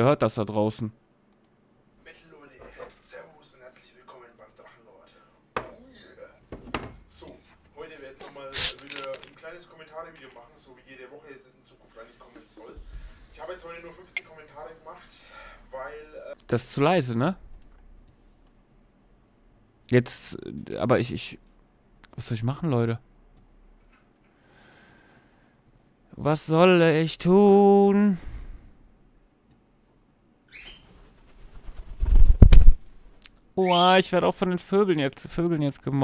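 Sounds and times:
bird wings flapping: 0:30.7 - 0:32.8.

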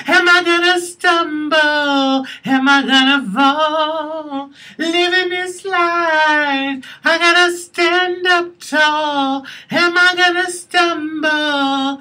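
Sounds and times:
woman singing unaccompanied: 0:00.0 - 0:12.0.

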